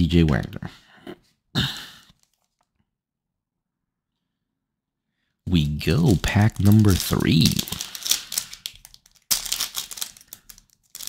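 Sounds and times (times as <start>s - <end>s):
foil pack rustling: 6.1s - 11.0s.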